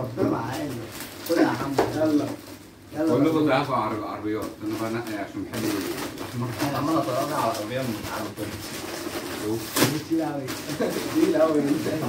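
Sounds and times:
plastic bag tearing open: 0:00.4 - 0:02.6, 0:04.4 - 0:12.0.

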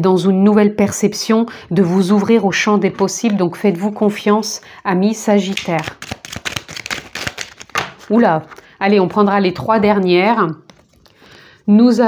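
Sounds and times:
cards being shuffled: 0:05.4 - 0:09.3, 0:10.6 - 0:11.3.

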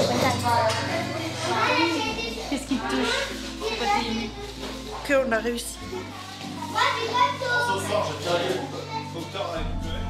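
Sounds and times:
children chattering: 0:00.0 - 0:05.0, 0:05.6 - 0:09.6
soft background music: 0:00.0 - 0:10.0.

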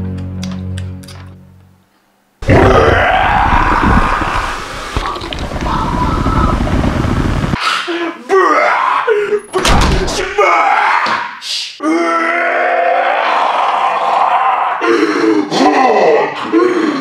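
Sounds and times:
man groaning and yelling: 0:02.4 - 0:04.6, 0:07.8 - 0:17.0
man screaming: 0:02.4 - 0:04.7, 0:07.8 - 0:16.6
low rumbling noise: 0:02.4 - 0:07.6.

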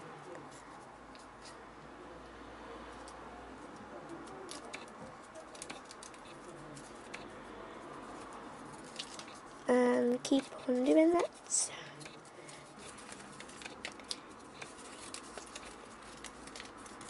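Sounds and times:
paper rustling and crinkling: 0:04.1 - 0:07.3, 0:08.0 - 0:17.0.

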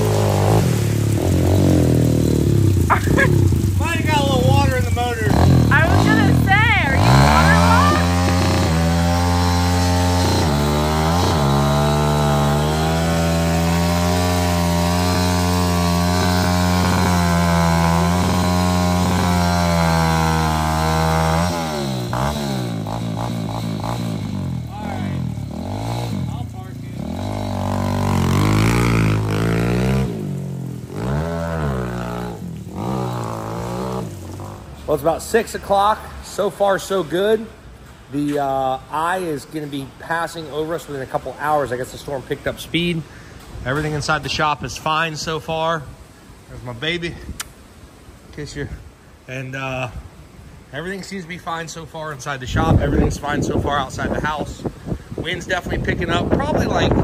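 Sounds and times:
dirt bike engine revving: 0:00.0 - 0:35.9.

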